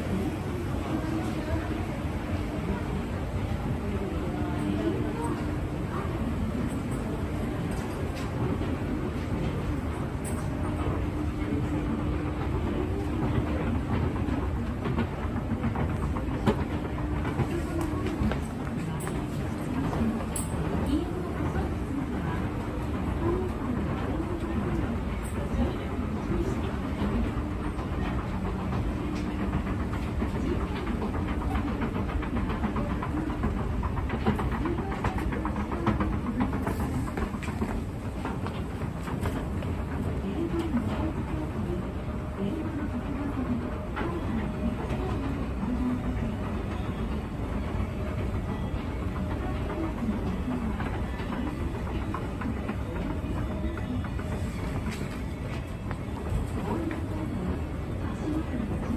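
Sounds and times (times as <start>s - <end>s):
escalator steps clicking: 6.7s - 58.9s.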